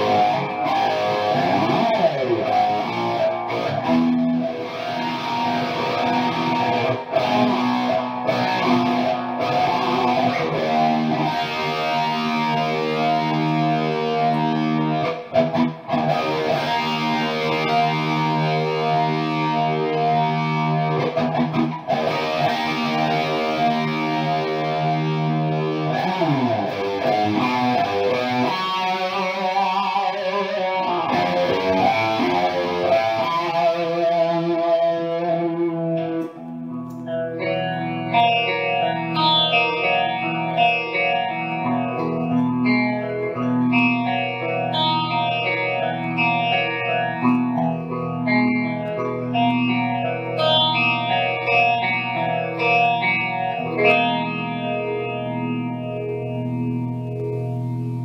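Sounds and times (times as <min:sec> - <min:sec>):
clean guitar arpeggios: 0:00.0 - 0:58.0
distorted electric guitar: 0:00.0 - 0:58.0.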